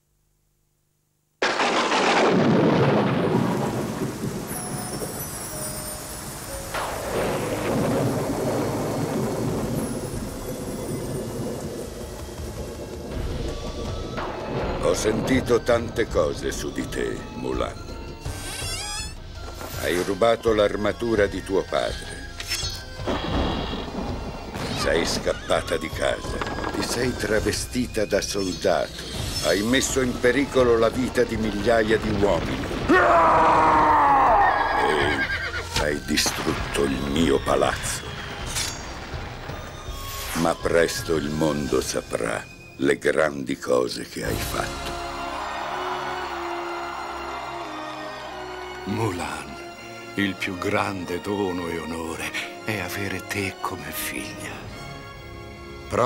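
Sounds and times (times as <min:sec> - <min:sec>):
rolling thunder: 0:01.4 - 0:05.7, 0:06.7 - 0:16.5, 0:23.1 - 0:27.6, 0:30.1 - 0:34.1
horse whinnying: 0:23.1 - 0:24.0, 0:32.9 - 0:35.8.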